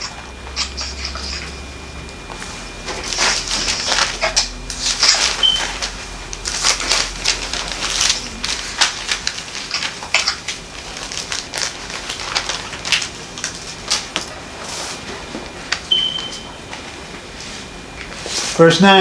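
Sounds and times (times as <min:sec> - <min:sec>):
thin pages rustling and flicking: 0:02.9 - 0:15.0.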